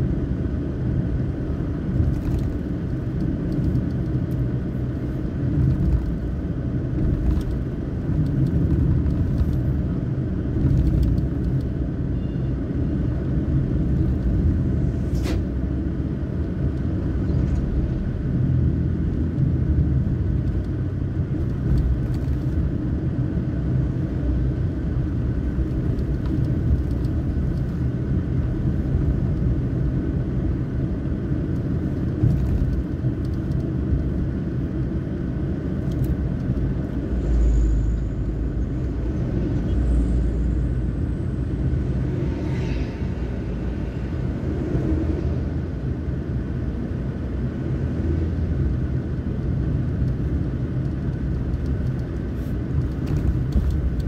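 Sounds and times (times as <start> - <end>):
car driving rumble: 0.0 - 54.0.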